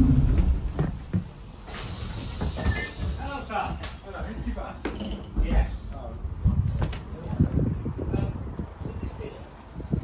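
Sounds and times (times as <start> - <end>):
low rumble: 0.0 - 1.0
footsteps stepping off bus: 0.0 - 8.8.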